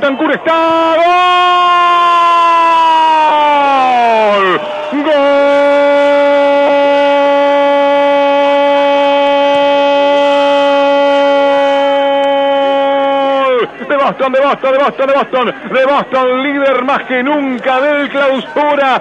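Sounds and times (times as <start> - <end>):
commentator shouting goal cry: 0.0 - 19.0.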